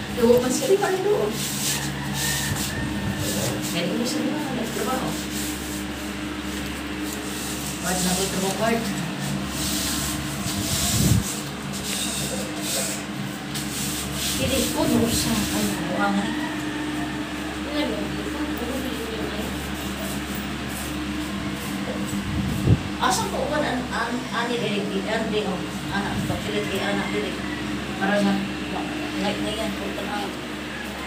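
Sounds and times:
low mechanical hum: 0.0 - 31.0
pad scraping painted floor: 0.2 - 16.4.

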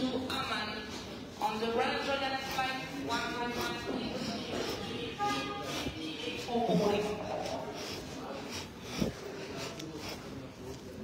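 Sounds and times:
hall background noise: 0.0 - 11.0
indistinct talking: 0.6 - 11.0.

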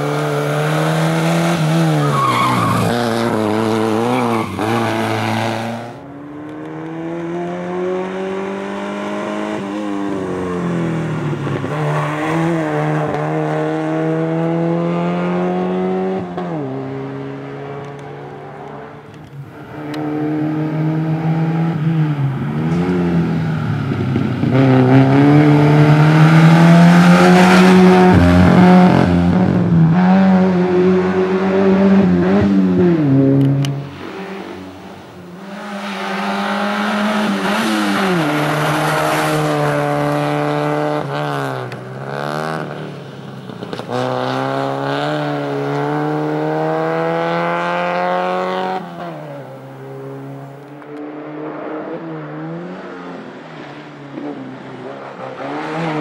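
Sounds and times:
race car engine revving: 0.0 - 43.0.

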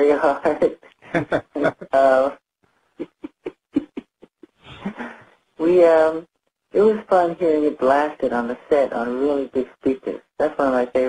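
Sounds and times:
man giggling: 1.1 - 2.0, 3.0 - 5.2.

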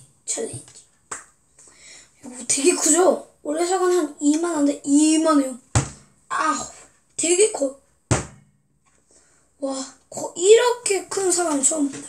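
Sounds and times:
dull thump: 5.7 - 6.1, 8.1 - 8.5.

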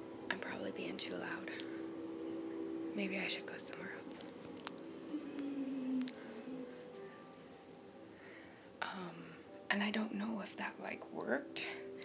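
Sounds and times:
woman talking in hushed voice: 0.3 - 1.8, 2.9 - 4.3, 8.8 - 12.0.

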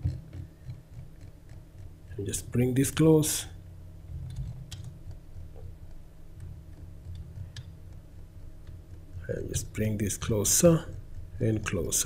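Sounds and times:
low steady hum: 0.0 - 12.0
computer mouse clicks: 4.1 - 9.3.

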